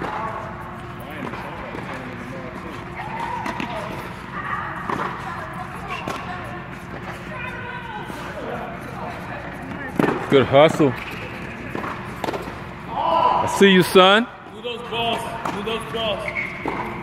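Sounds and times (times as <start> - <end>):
balls bouncing on hard court: 0.0 - 7.4, 9.4 - 12.7, 15.1 - 17.0
distant chatter of players: 0.0 - 17.0
steady hum: 0.0 - 17.0
tennis balls struck by rackets: 3.1 - 4.1, 4.8 - 5.2, 6.0 - 6.3, 9.6 - 10.3, 10.9 - 12.7, 15.4 - 15.7, 16.6 - 17.0.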